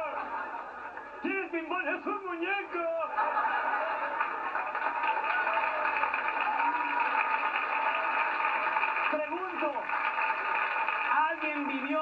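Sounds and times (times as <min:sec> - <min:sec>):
audience laughing: 0:00.0 - 0:01.2, 0:02.8 - 0:05.6
audience applauding: 0:03.4 - 0:12.0.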